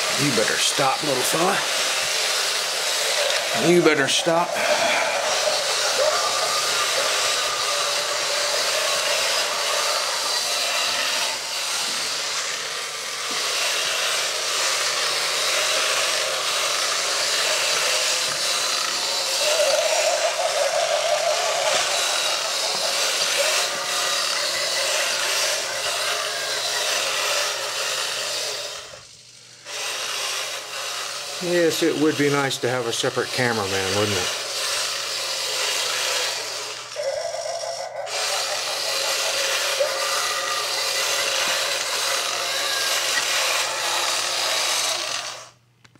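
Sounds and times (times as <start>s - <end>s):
robot toy motors whirring: 0.0s - 45.6s.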